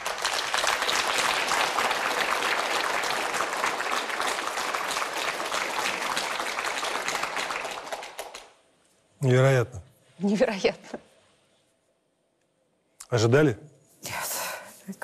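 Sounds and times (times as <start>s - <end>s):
audience applauding: 0.0s - 8.6s.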